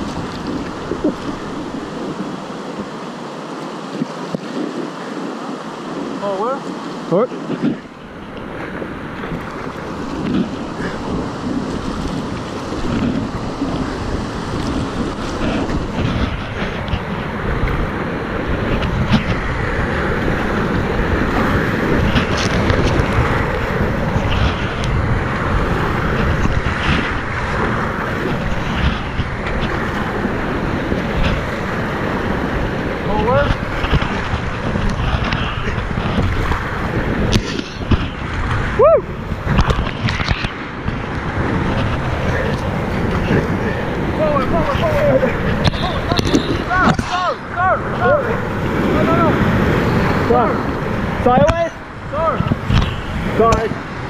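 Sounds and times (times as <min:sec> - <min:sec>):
paddle splashes: 0:00.0 - 0:54.0
river rapids rushing: 0:00.0 - 0:54.0
wind buffeting microphone: 0:00.0 - 0:54.0.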